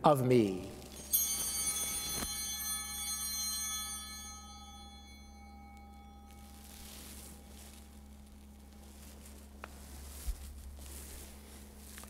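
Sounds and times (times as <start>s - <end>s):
altar bell ringing: 0.6s - 9.4s.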